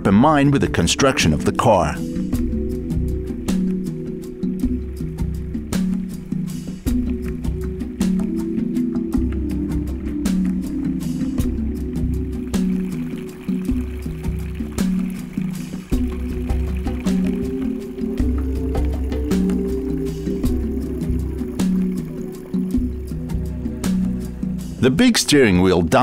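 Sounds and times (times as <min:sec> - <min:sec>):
background music with steady beat: 0:00.0 - 0:26.0.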